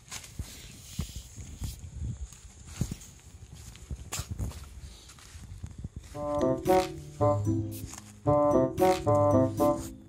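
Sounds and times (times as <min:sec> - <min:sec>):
footsteps on plastic sheeting: 0:02.1 - 0:09.9.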